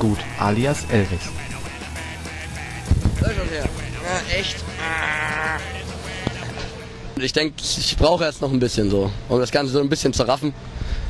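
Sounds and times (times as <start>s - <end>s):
wavering vocal sound: 0.0s - 6.9s
background music: 0.0s - 7.2s
man's exclamation: 3.8s - 5.8s.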